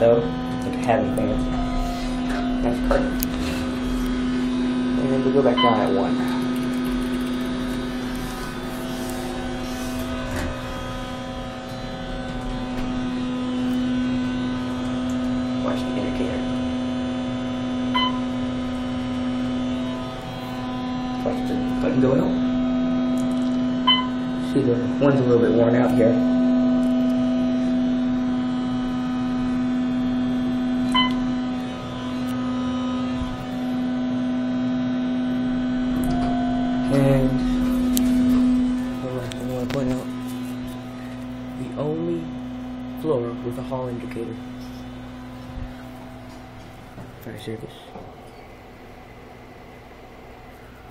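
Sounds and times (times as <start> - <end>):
low rumble: 0.0 - 5.3
elevator humming: 0.0 - 50.9.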